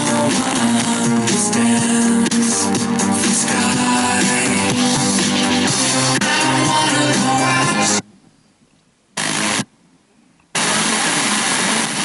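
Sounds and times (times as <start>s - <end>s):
radio static hiss: 5.0s - 12.0s.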